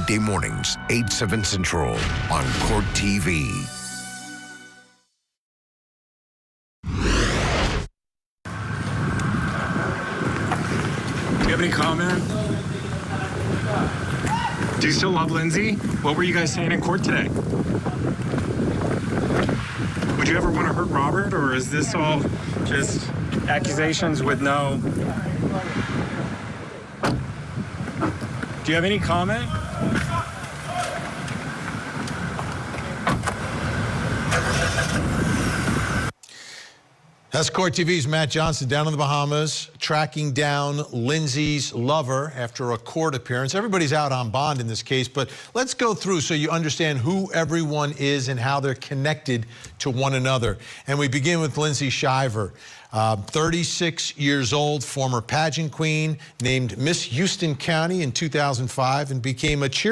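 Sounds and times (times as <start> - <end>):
man's voice: 0.0 - 3.9
street noise: 0.0 - 4.1, 8.5 - 38.6
wind rumbling on microphone: 8.5 - 36.1
car door shutting: 27.0 - 27.3, 33.0 - 33.5.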